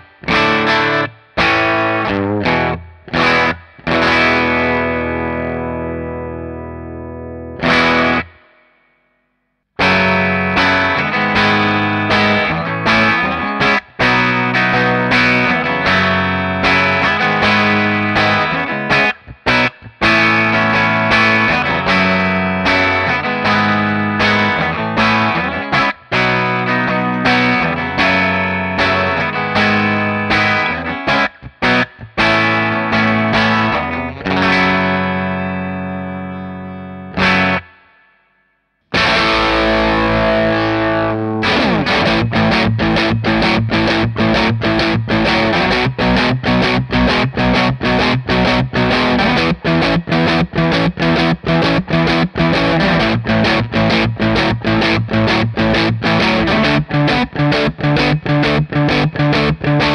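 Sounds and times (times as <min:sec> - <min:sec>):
overdriven electric guitar chords: 0:00.0 - 0:09.2, 0:09.8 - 0:59.9.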